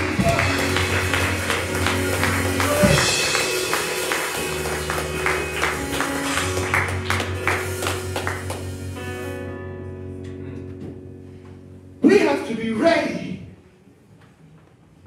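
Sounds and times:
hand claps: 0.0s - 8.8s
low bass: 0.0s - 12.0s
keyboard chords: 0.0s - 12.9s.

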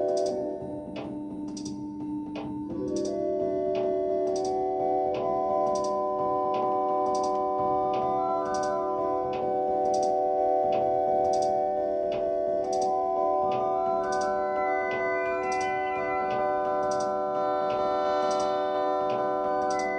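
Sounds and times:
high ticking pulse: 1.5s - 19.9s
held synth tones: 2.7s - 19.9s.

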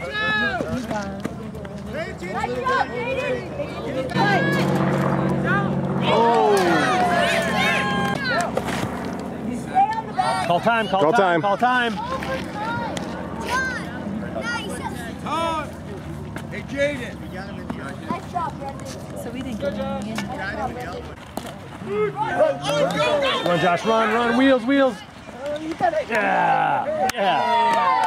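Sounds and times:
spectators talking: 0.0s - 28.0s
spectators shouting: 4.1s - 8.6s, 26.1s - 28.0s.

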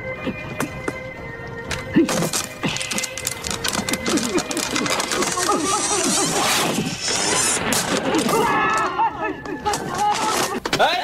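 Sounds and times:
wooden ladders clattering: 7.6s - 11.0s.

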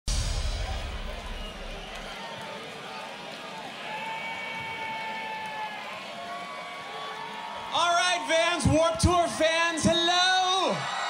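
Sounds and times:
crowd chattering and calling out: 0.1s - 11.0s.

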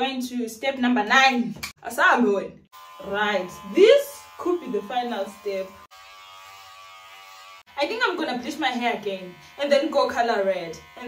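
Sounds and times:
electric hair clippers buzzing: 2.7s - 11.0s.

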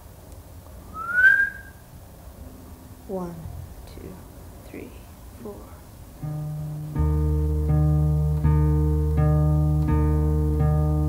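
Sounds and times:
faint steady hum: 0.0s - 11.0s
rising whistle: 0.9s - 1.9s.

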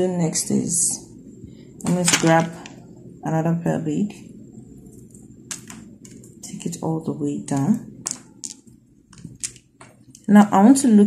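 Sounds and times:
beads clicking together: 8.0s - 10.2s.

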